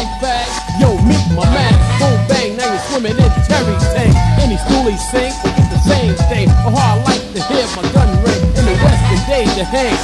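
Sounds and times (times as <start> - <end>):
hip hop music with vocals: 0.0 - 10.0.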